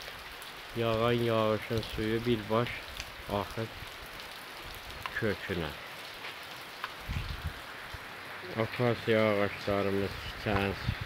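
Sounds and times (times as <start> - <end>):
steady rain: 0.0 - 11.0.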